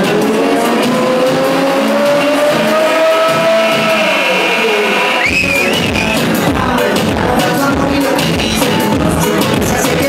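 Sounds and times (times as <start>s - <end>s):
electronic dance music: 0.0s - 10.0s
gliding synth tone: 0.4s - 6.5s.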